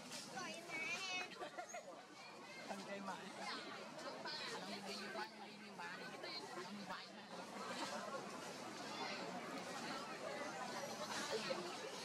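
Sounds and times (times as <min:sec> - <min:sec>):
babble of voices: 0:00.4 - 0:12.0.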